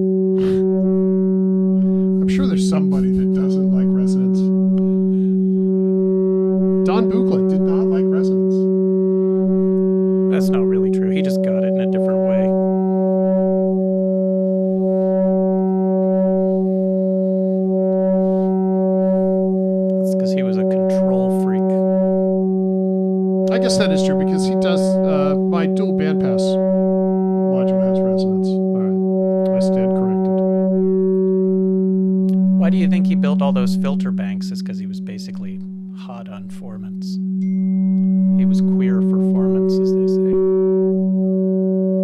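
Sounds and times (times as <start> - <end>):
synthesizer drone with overtones: 0.0 - 42.0
synthesizer sweeping sounds: 1.7 - 8.7, 10.0 - 22.5, 23.4 - 30.6.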